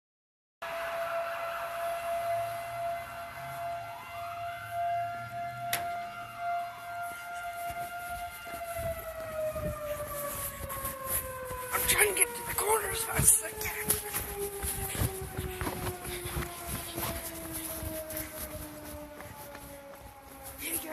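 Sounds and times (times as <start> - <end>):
siren wailing: 0.6 - 20.9
hurried footsteps: 7.0 - 20.9.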